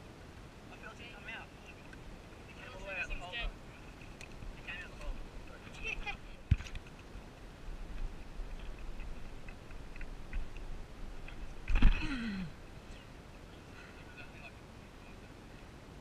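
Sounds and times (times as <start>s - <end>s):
wind rumbling on microphone: 3.3s - 12.9s.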